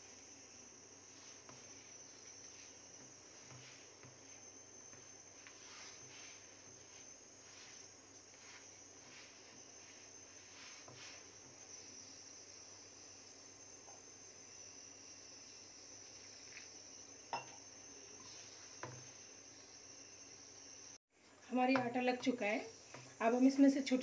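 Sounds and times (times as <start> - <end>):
hand rubbing dough in steel bowl: 0.0 - 12.5.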